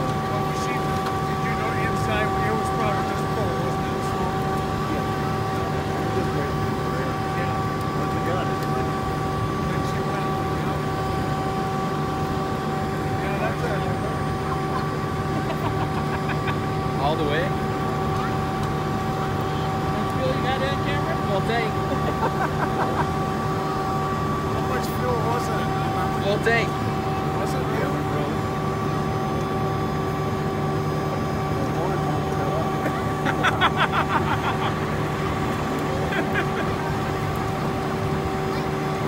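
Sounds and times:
distant voices: 0:00.0 - 0:39.0.

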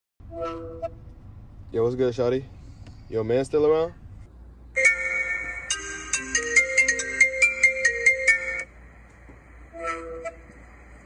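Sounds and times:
phone ringtone melody: 0:04.8 - 0:08.7.

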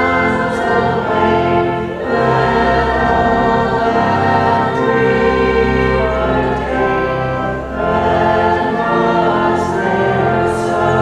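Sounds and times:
organ chords: 0:00.0 - 0:11.0
voices singing a hymn: 0:00.0 - 0:11.0.

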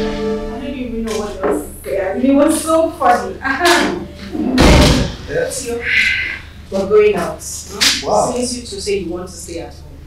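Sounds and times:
door shutting with thud: 0:04.6 - 0:05.3.

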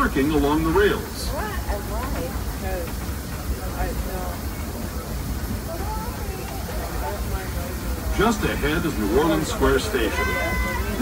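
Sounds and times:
faint voices talking: 0:00.0 - 0:11.0
train car rumbling along track: 0:00.0 - 0:11.0.

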